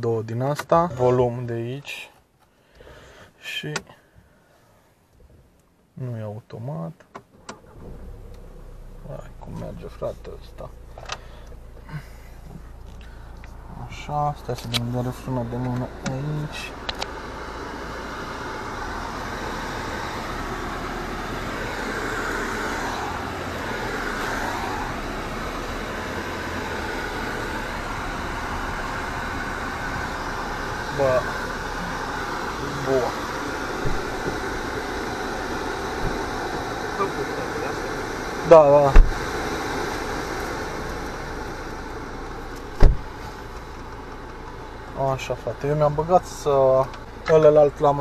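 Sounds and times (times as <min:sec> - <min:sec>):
car engine idling: 0:07.2 - 0:48.0
ventilation fan blowing: 0:07.5 - 0:48.0
soft thump: 0:42.8 - 0:43.1.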